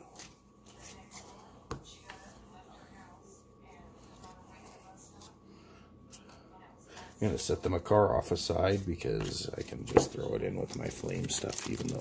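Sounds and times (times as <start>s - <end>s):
trading cards handled: 9.1s - 12.0s.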